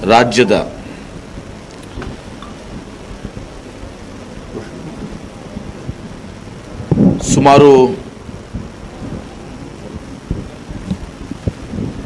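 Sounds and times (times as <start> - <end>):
man speaking: 0.0 - 0.8
rumbling hissy background noise: 0.0 - 12.0.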